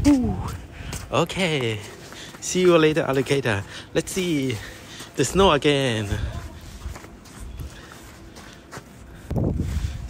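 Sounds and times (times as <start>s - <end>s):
footsteps on snow: 0.0s - 10.0s.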